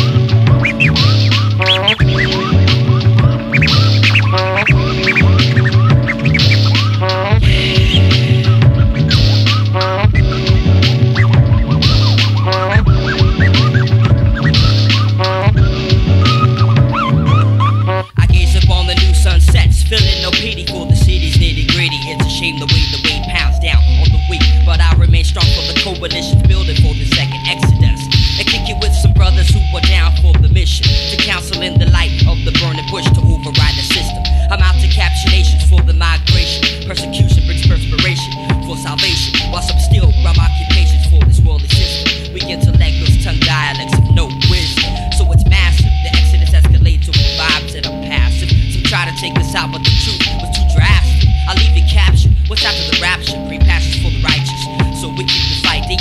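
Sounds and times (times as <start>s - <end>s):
hip hop beat with deep bass: 0.0s - 56.0s
person rapping: 0.0s - 56.0s.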